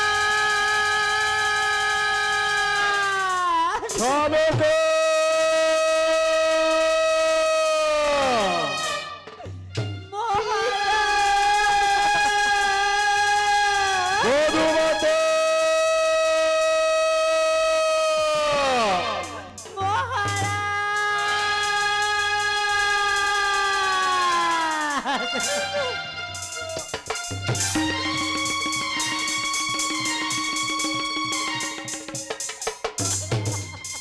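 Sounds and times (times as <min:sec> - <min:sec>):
person singing long high note: 0:10.1 - 0:26.7.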